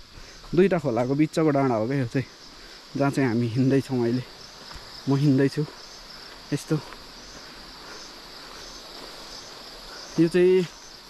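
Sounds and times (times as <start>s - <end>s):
insects chirping: 0.0s - 11.0s.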